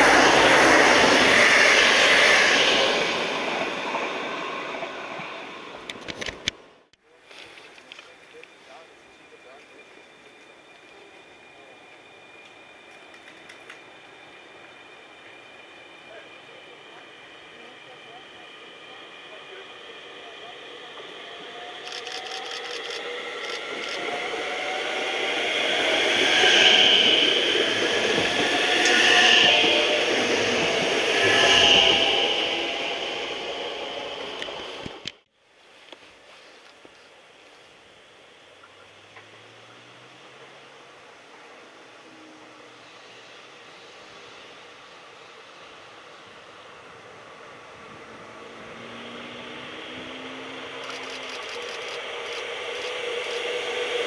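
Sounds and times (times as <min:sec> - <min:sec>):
electric train approaching: 0:00.0 - 0:07.2, 0:07.8 - 0:35.3, 0:36.3 - 0:54.0
steady background noise: 0:34.3 - 0:54.0.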